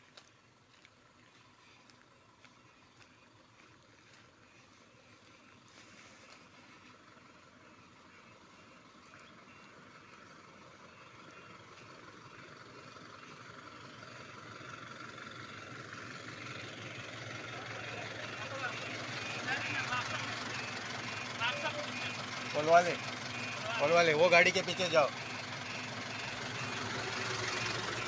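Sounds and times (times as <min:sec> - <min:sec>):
diesel truck engine approaching: 0:00.0 - 0:28.0.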